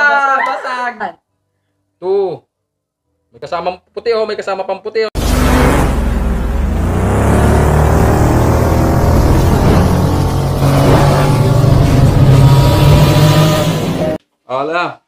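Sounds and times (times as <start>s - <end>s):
engine revving sound effect: 5.2s - 14.2s.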